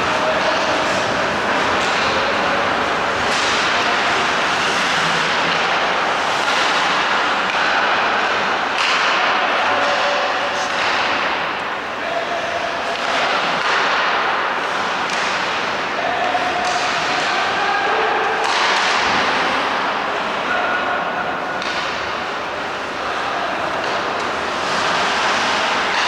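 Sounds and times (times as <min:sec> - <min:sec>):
echoing hall noise: 0:00.0 - 0:26.0
hockey sticks clacking on boards: 0:00.0 - 0:26.0
skates scraping ice: 0:00.1 - 0:11.4, 0:22.8 - 0:26.0.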